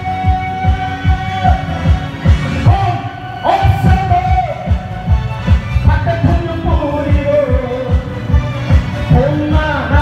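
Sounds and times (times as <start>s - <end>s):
person singing over loudspeaker: 0.0s - 5.1s, 5.7s - 10.0s
backing track bass-drum beat: 0.0s - 10.0s.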